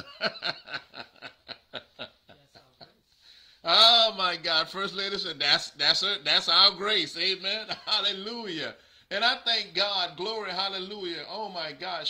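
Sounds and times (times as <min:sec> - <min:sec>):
man chuckling: 0:00.0 - 0:02.8.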